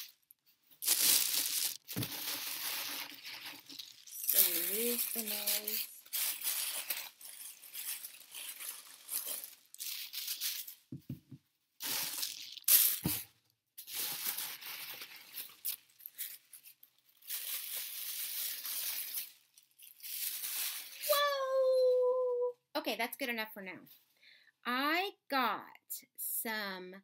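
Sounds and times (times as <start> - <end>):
paper and plastic wrapping crinkling: 0.0 - 10.9, 11.8 - 13.2, 13.8 - 21.2.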